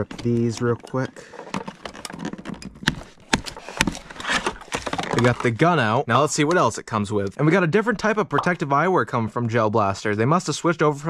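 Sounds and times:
packaging crackling and rustling: 0.0s - 5.7s.

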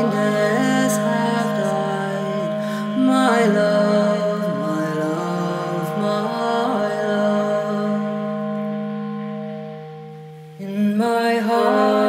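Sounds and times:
sustained organ chord: 0.0s - 12.0s.

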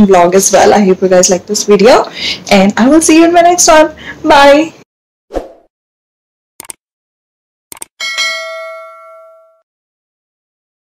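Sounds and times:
quick double clicks: 6.6s - 6.8s, 7.7s - 7.9s
bright bell ding: 8.0s - 9.7s.

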